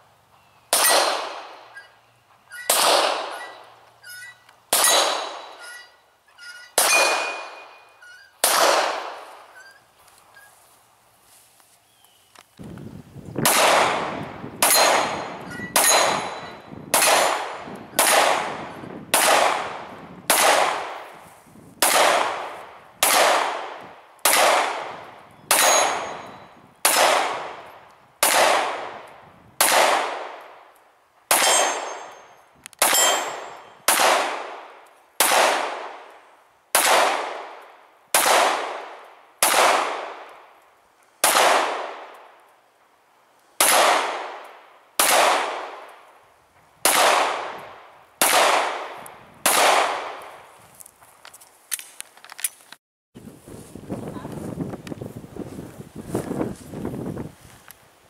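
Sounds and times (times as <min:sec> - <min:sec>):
pistol shots echoing: 0:00.7 - 0:01.8, 0:02.7 - 0:03.6, 0:04.7 - 0:05.8, 0:06.8 - 0:07.8, 0:08.4 - 0:09.5, 0:13.4 - 0:21.1, 0:21.8 - 0:30.6, 0:31.3 - 0:32.2, 0:32.8 - 0:36.1, 0:36.7 - 0:40.6, 0:41.2 - 0:42.3, 0:43.6 - 0:46.0, 0:46.8 - 0:50.4
steel plate target clanging: 0:02.5 - 0:08.3, 0:14.7 - 0:16.7, 0:25.6 - 0:26.5, 0:31.4 - 0:33.8.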